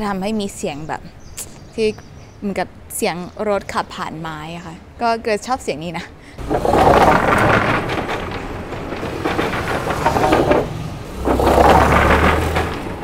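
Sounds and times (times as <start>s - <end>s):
wheels rattling over wooden boards: 6.4s - 13.0s.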